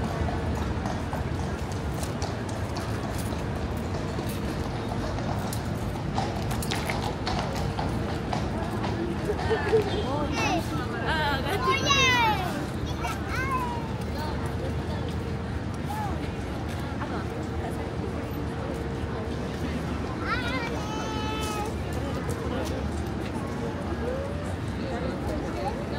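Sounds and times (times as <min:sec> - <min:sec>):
horse hooves clip-clopping on stone: 0:00.0 - 0:10.0
crowd chatter: 0:00.0 - 0:25.9.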